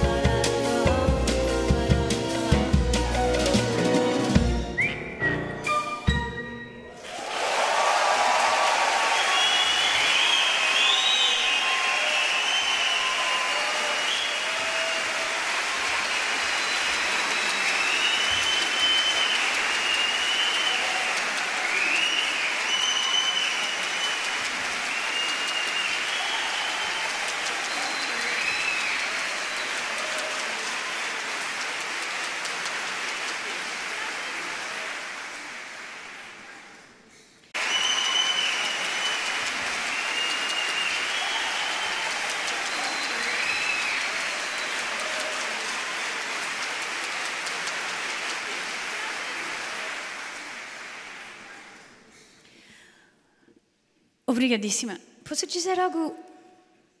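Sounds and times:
whistles: 0:04.6 - 0:06.5, 0:09.0 - 0:15.3, 0:15.9 - 0:31.1, 0:37.6 - 0:47.8
audience applauding: 0:06.9 - 0:52.8.

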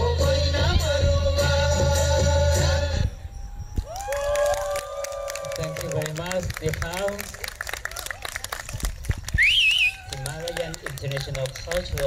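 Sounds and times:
audience cheering and whooping: 0:03.8 - 0:06.1
people clapping: 0:03.8 - 0:12.0.

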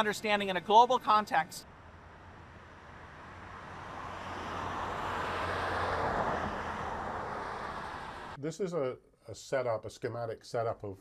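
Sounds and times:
car passing on road: 0:01.6 - 0:08.4.

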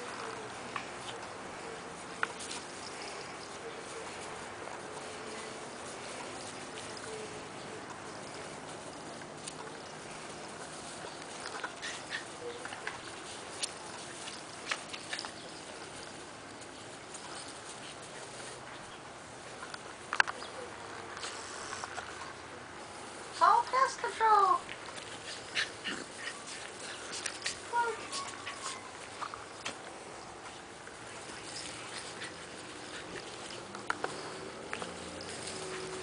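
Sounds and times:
puppies scuffling on grass: 0:00.0 - 0:36.0
puppy noises: 0:00.0 - 0:36.0
steady background hiss: 0:00.0 - 0:36.0
small dog sounds: 0:09.4 - 0:16.2, 0:23.5 - 0:29.8
steady hiss: 0:21.0 - 0:36.0.

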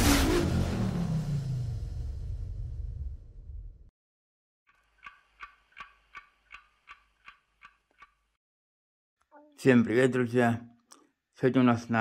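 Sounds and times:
faint ringing clock ticks: 0:04.7 - 0:08.3.

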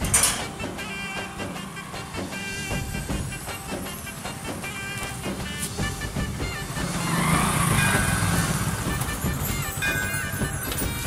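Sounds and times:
motorcycle passing by: 0:00.4 - 0:11.0.

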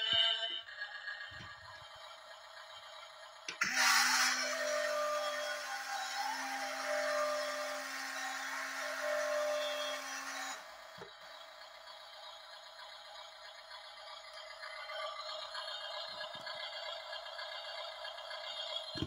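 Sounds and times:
small electric motor whirring: 0:03.6 - 0:10.8.

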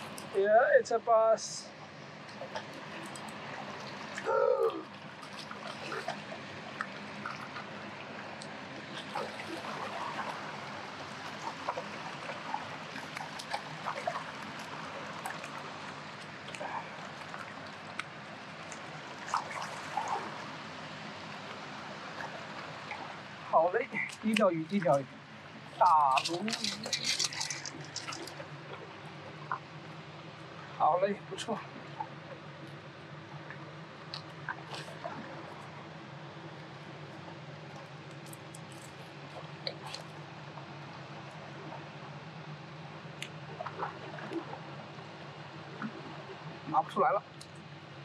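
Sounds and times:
river water lapping on rocks: 0:01.8 - 0:30.8, 0:31.4 - 0:48.0
short falling cry: 0:04.2 - 0:04.9.

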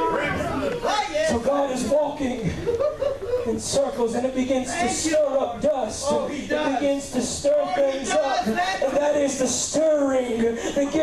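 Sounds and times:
man speaking into a microphone: 0:00.0 - 0:02.7, 0:03.4 - 0:11.0.

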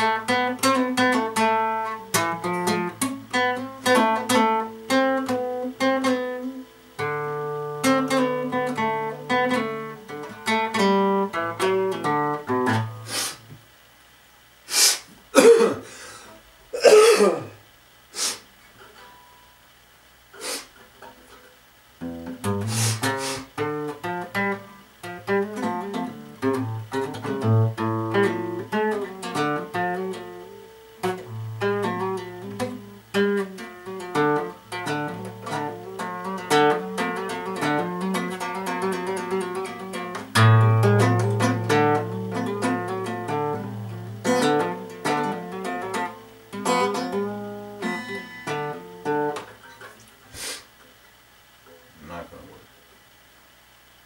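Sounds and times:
fingerpicked acoustic guitar: 0:00.0 - 0:13.8, 0:18.4 - 0:19.8, 0:20.7 - 0:52.4.

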